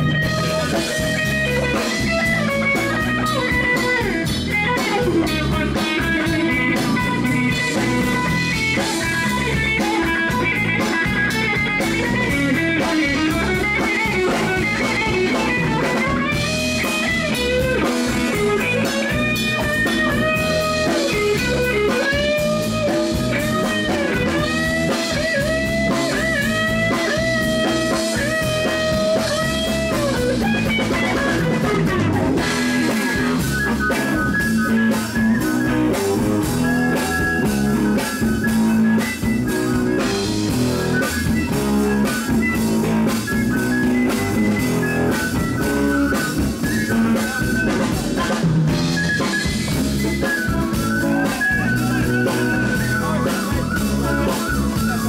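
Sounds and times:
blues-rock band playing: 0.0s - 55.0s
harmonica bending notes: 0.0s - 55.0s.

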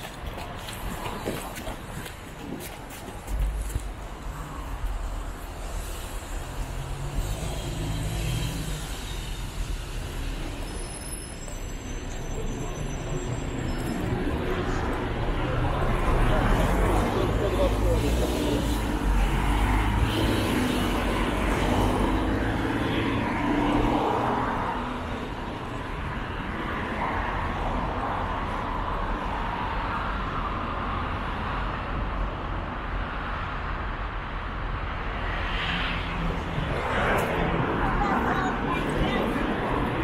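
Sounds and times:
street traffic rumbling: 0.0s - 40.0s
indistinct voices: 36.8s - 40.0s.

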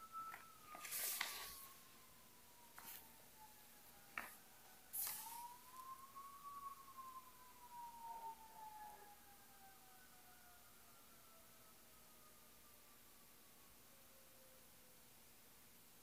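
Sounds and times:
faint wailing siren: 0.0s - 15.8s.

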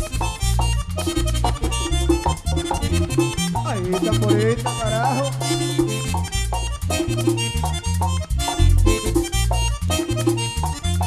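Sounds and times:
accordion melody: 0.0s - 11.0s
high percussion ticks: 0.0s - 11.0s
stepping bass line: 0.0s - 11.0s.

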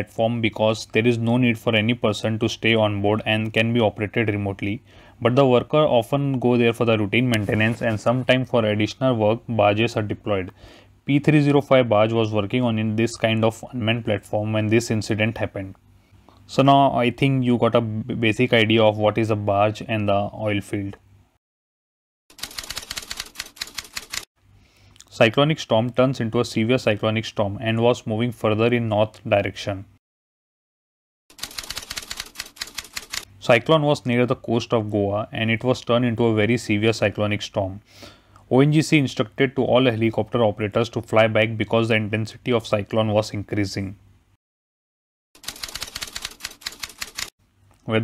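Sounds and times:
typewriter typing clicks: 22.3s - 24.2s, 31.3s - 33.3s, 45.4s - 47.3s.

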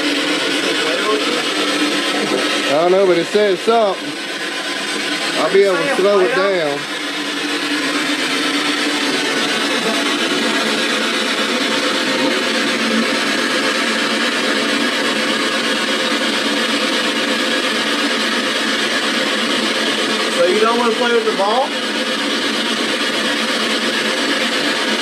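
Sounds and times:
radio static rush: 5.4s - 7.0s.

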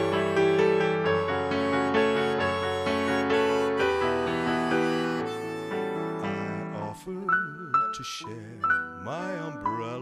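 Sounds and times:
accordion: 0.0s - 10.0s
electric keyboard piano chords: 0.0s - 10.0s.

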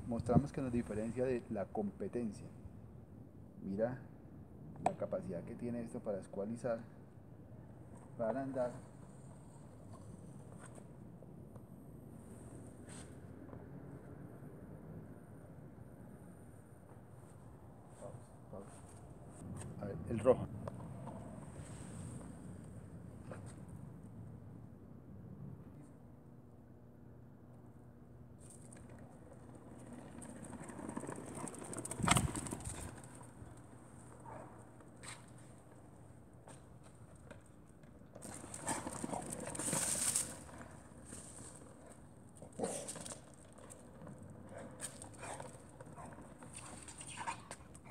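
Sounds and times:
scooter wheels rumbling on bricks: 28.4s - 47.9s.

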